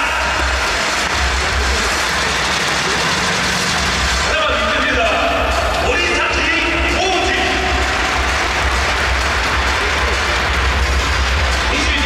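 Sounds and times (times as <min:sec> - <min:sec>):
public-address announcement: 0:00.0 - 0:12.0
stadium crowd applauding: 0:00.0 - 0:12.0.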